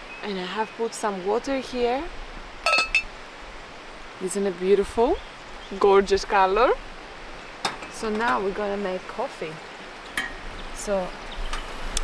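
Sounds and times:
metal teapot lid clinking: 2.7s - 3.1s.

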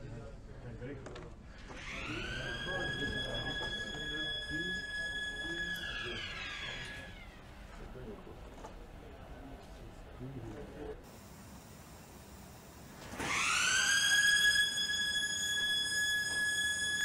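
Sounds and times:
warning siren tone: 1.8s - 7.1s, 11.1s - 17.0s.

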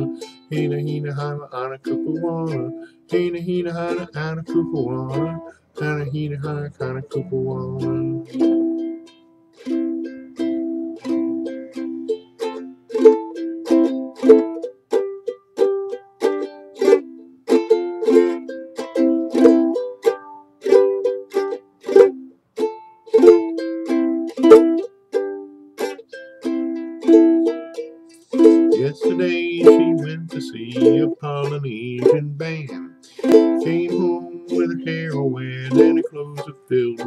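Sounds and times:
ukulele strumming chords: 0.0s - 37.0s.

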